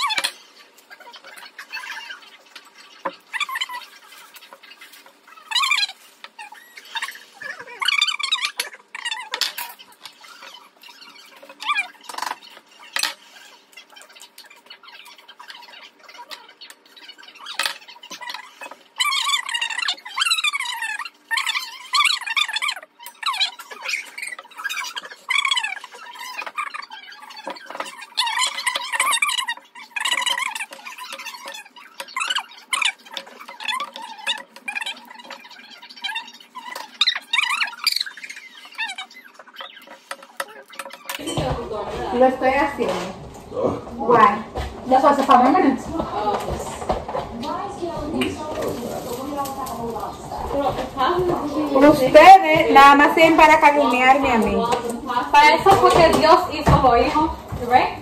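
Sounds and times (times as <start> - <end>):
bird-like chirps and squeaky calls: 0.0 - 41.3.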